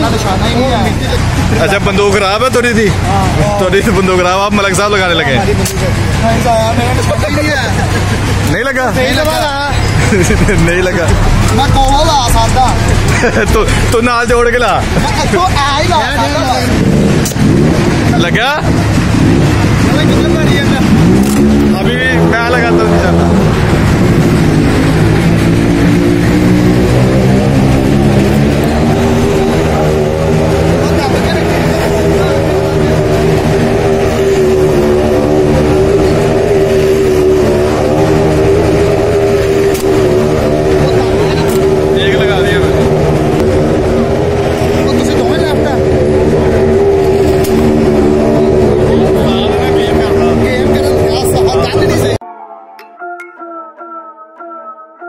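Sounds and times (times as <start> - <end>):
loud engine running: 0.0 - 52.2
voices: 0.0 - 55.0.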